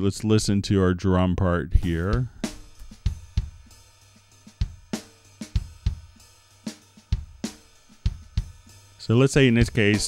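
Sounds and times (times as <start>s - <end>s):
sampled drum kit playing: 1.8s - 10.0s.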